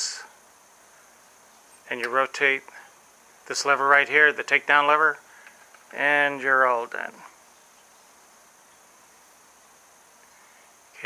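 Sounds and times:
faint steady hiss: 0.0s - 11.0s
thin high-pitched whine: 0.0s - 11.0s.

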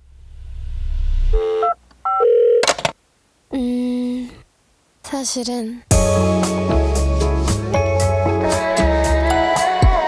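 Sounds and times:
low rumble: 0.0s - 1.4s
held electronic tone: 0.4s - 2.7s
short electronic beeps: 1.3s - 2.6s.

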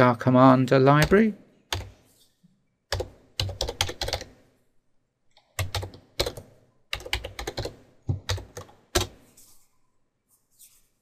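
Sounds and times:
typing on computer keyboard: 1.0s - 2.0s, 2.9s - 4.4s, 5.4s - 9.2s.

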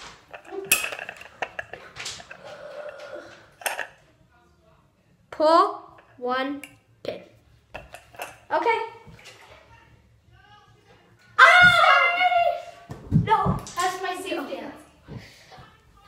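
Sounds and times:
girls shouting excitedly: 11.4s - 13.5s.

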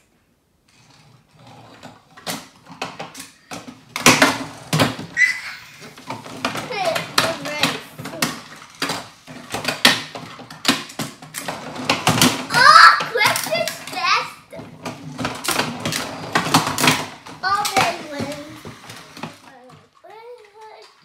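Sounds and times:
toy cars clicking on wood: 0.7s - 21.0s.

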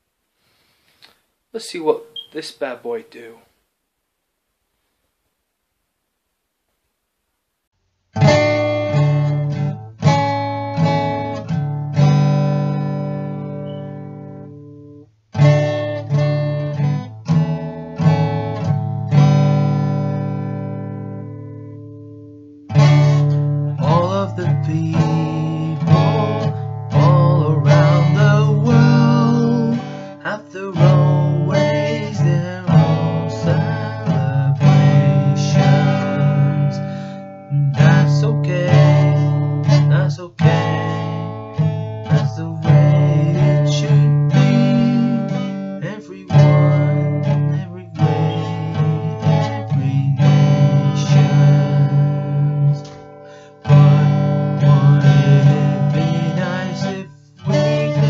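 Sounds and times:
acoustic guitar strumming: 8.1s - 58.0s.

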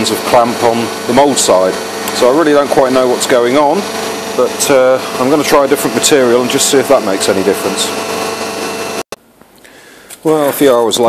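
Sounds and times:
machine humming and hissing: 0.0s - 9.1s.

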